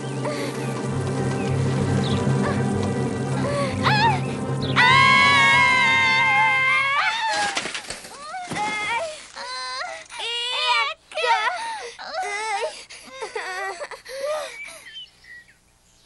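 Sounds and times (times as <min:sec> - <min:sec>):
background music: 0:00.0 - 0:07.3
cartoon characters screaming: 0:04.8 - 0:07.7.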